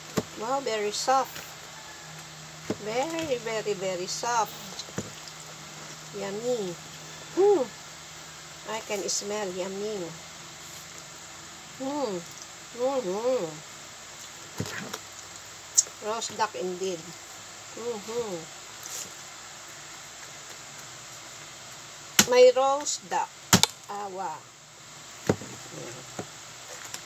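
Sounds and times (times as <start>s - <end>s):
person humming: 6.3s - 7.8s.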